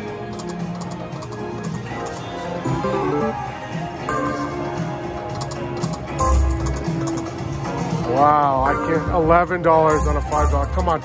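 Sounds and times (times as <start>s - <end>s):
slot machine game music: 0.0s - 7.3s, 8.6s - 11.0s.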